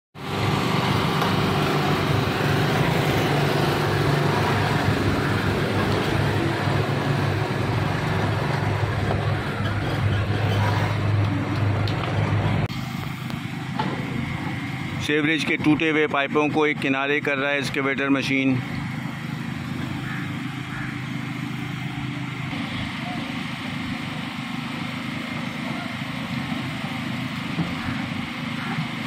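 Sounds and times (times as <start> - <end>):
cars and motorcycles passing: 0.2 - 29.0.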